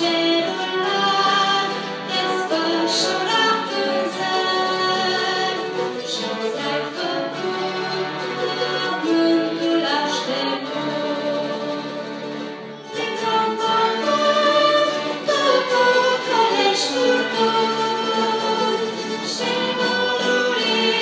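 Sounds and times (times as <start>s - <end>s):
bowed strings: 0.0s - 21.0s
choir singing: 0.0s - 21.0s.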